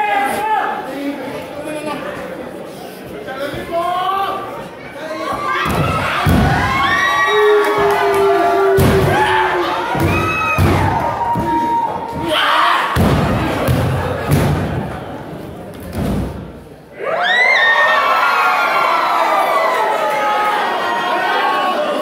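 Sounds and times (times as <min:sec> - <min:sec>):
crowd shouting and cheering: 0:00.0 - 0:01.3, 0:03.4 - 0:22.0
crowd yelling loudly: 0:03.7 - 0:15.1, 0:16.9 - 0:22.0.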